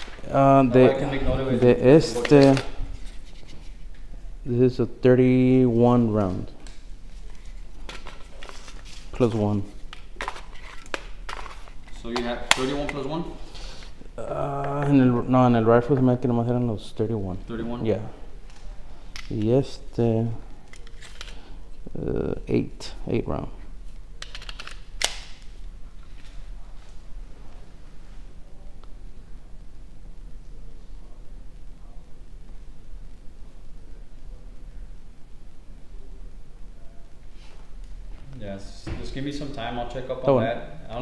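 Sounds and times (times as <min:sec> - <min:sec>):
objects being handled: 0:00.0 - 0:00.4, 0:01.6 - 0:04.1, 0:06.1 - 0:15.0, 0:20.5 - 0:21.8, 0:23.6 - 0:27.7
low room hum: 0:00.0 - 0:41.0.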